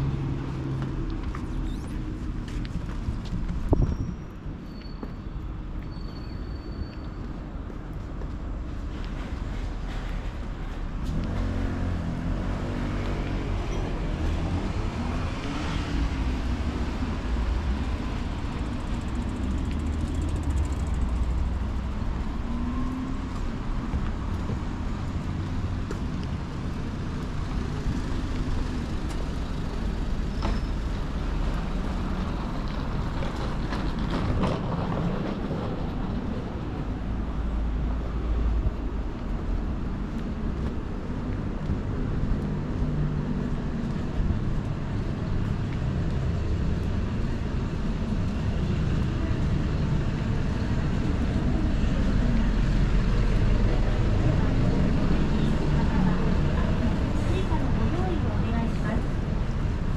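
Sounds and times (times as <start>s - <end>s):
street traffic rumble: 0.0s - 59.9s.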